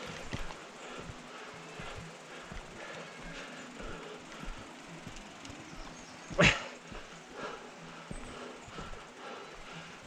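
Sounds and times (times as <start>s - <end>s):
mountain bike rattling on trail: 0.0s - 7.2s.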